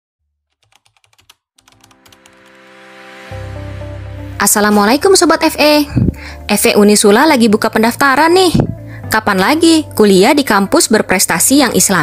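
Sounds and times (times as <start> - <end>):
laptop keyboard typing: 0.5 - 2.6.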